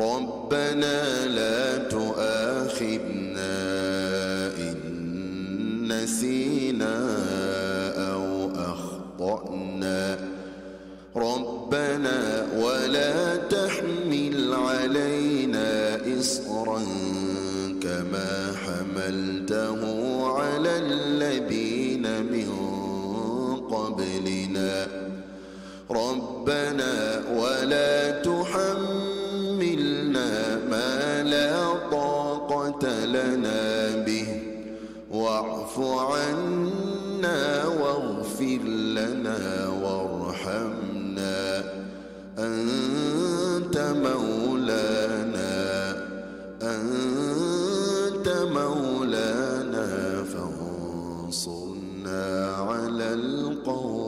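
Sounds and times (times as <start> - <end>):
man chanting melodically: 0.0 - 25.2, 25.8 - 54.0.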